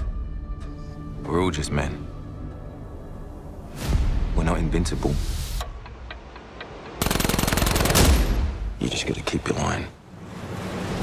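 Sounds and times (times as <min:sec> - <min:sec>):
automatic gunfire burst: 0:07.0 - 0:08.4
man speaking: 0:08.8 - 0:10.0.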